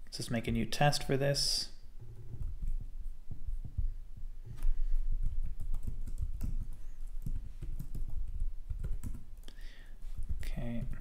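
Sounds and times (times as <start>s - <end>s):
keyboard typing: 2.0s - 3.0s, 5.1s - 9.5s.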